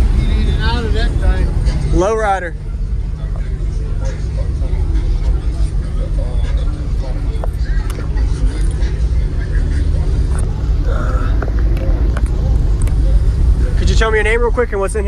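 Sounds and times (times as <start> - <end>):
crowd chatter: 0.0 - 15.0
loud low rumble: 0.0 - 15.0.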